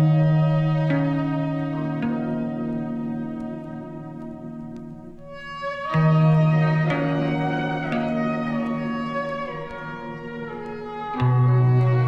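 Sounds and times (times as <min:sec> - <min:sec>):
music from vinyl record: 0:00.0 - 0:12.0.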